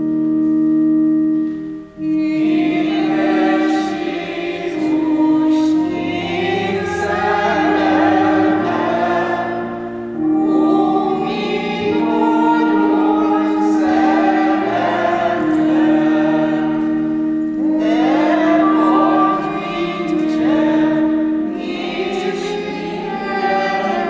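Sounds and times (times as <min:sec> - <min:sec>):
organ chords: 0:00.0 - 0:24.0
voices singing a hymn: 0:02.0 - 0:24.0.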